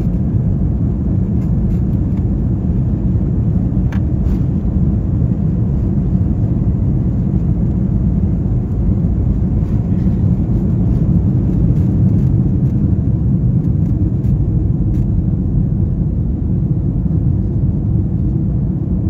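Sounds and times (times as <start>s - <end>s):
jet engines low rumble: 0.0s - 19.0s.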